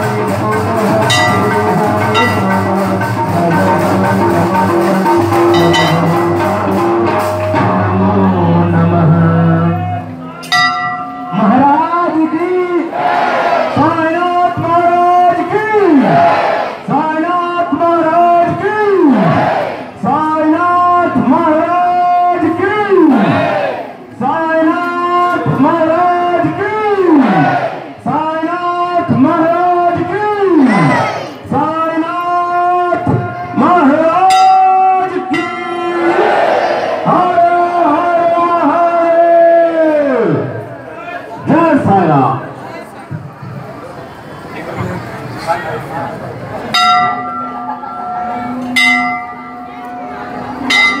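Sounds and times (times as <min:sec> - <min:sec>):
large metal bell ringing: 0:00.9 - 0:07.6, 0:10.4 - 0:12.4, 0:34.2 - 0:36.0, 0:46.7 - 0:51.0
group chanting in unison: 0:12.9 - 0:13.9, 0:16.0 - 0:16.8, 0:19.1 - 0:19.9, 0:23.1 - 0:23.9, 0:27.1 - 0:28.0, 0:35.9 - 0:37.1.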